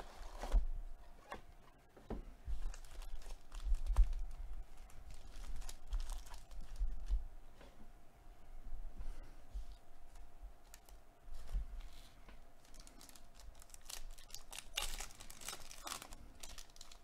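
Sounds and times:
foil wrapper tearing and crinkling: 0:02.6 - 0:07.1, 0:12.6 - 0:17.0.

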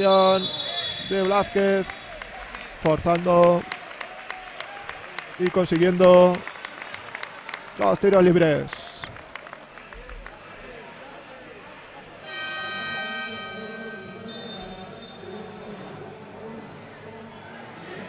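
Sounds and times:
scoreboard horn: 0:12.2 - 0:15.5.

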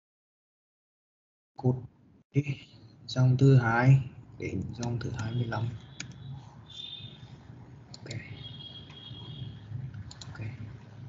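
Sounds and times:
computer mouse clicking: 0:04.6 - 0:07.0, 0:07.9 - 0:10.6.

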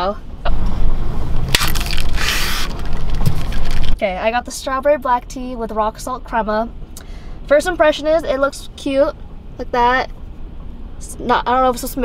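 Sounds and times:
plastic crinkling: 0:01.6 - 0:04.0.

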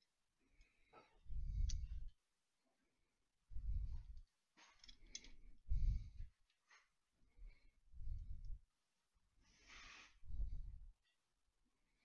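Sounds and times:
small metal parts clicking: 0:04.2 - 0:05.4.

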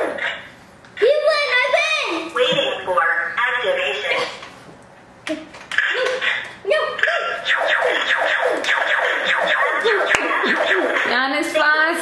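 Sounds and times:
toy laser gun zaps: 0:05.7 - 0:11.2.

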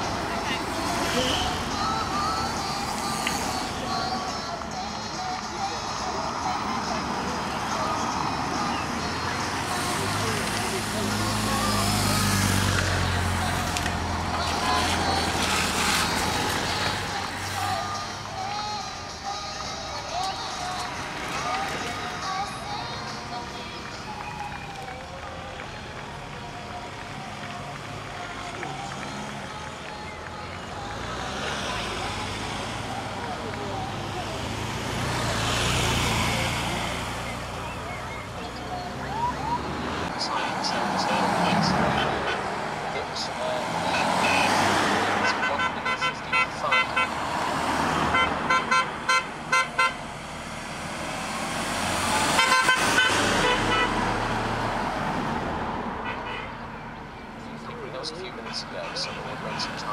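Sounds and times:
cars and motorcycles driving past: 0:00.0 - 0:59.9.

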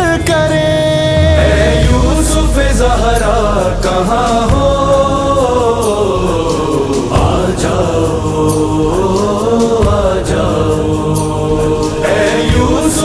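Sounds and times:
steady percussive beat: 0:00.1 - 0:13.0
voices chanting in chorus: 0:01.2 - 0:13.0.

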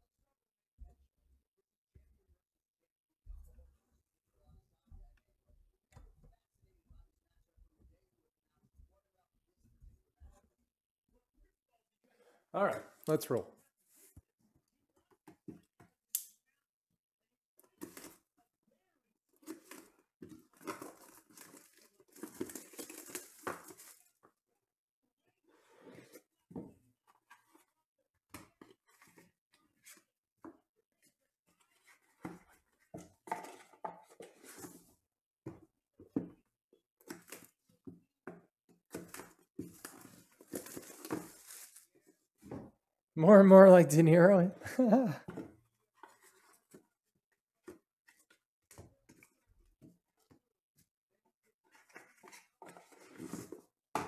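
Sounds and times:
cardboard and foam handled: 0:19.4 - 0:24.2, 0:25.6 - 0:36.4, 0:38.9 - 0:42.8, 0:45.3 - 0:50.4, 0:51.6 - 0:54.0
plastic wrap tearing and crinkling: 0:20.6 - 0:24.1.

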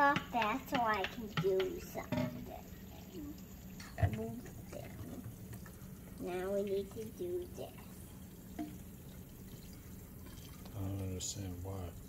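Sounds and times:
tap water trickling: 0:00.0 - 0:12.0.

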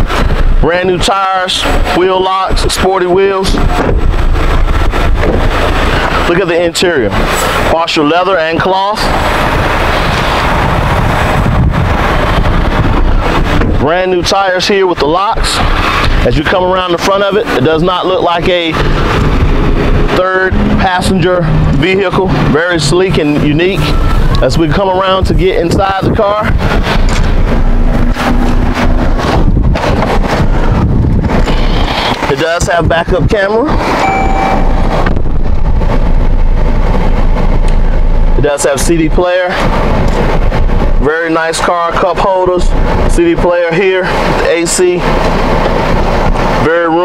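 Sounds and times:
wind blowing across microphone: 0:00.0 - 0:47.0
voice: 0:00.6 - 0:03.7, 0:06.2 - 0:09.2, 0:13.8 - 0:15.6, 0:16.2 - 0:18.8, 0:20.1 - 0:26.6, 0:32.2 - 0:34.8, 0:38.4 - 0:39.6, 0:41.0 - 0:45.1, 0:46.6 - 0:47.0.

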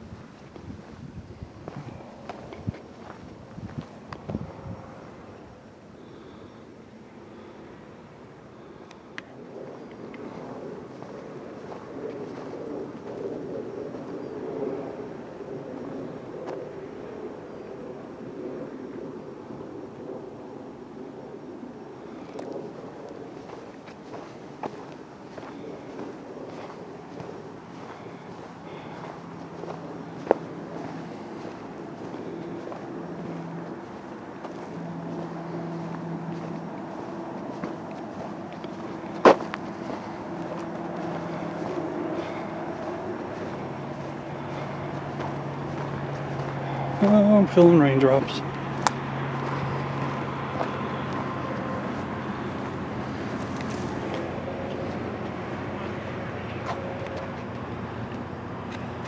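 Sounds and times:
distant highway traffic: 0:00.0 - 0:59.0
low engine hum: 0:00.0 - 0:59.0.

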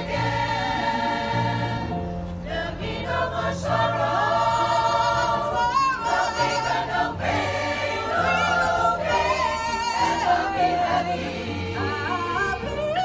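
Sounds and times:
choir singing in harmony: 0:00.0 - 0:13.0.

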